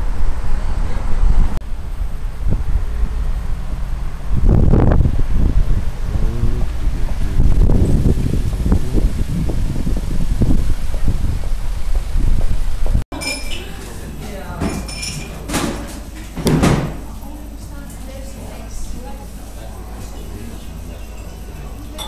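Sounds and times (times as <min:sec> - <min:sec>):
wind buffeting microphone: 0:00.0 - 0:13.0
street traffic: 0:00.0 - 0:22.0
car driving past: 0:01.7 - 0:09.8.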